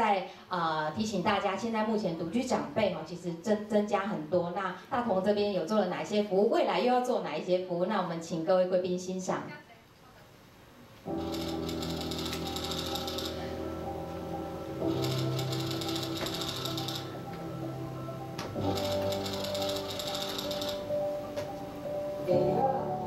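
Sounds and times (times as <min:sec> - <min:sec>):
soundtrack music with chords: 0:11.1 - 0:23.0
typewriter typing clicks: 0:11.3 - 0:13.4, 0:15.0 - 0:17.1, 0:18.8 - 0:20.8.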